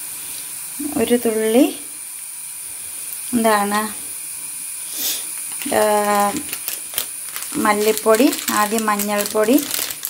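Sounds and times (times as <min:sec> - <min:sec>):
onions sizzling in a pan: 0:00.0 - 0:10.0.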